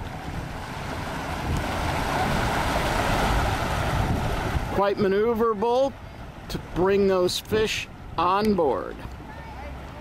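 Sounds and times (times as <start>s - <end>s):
wind buffeting microphone: 0.0s - 6.8s
motorboat engine rumbling: 0.0s - 10.0s
water wash of boat hull: 0.0s - 10.0s.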